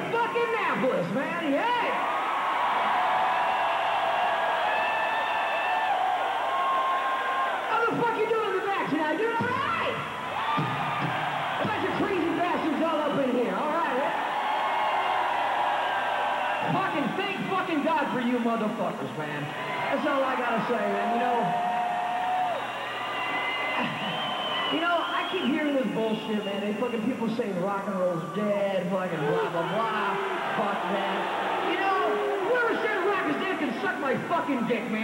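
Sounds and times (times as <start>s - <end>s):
crowd cheering and whooping: 0.0s - 18.4s, 19.4s - 26.1s, 29.1s - 34.2s.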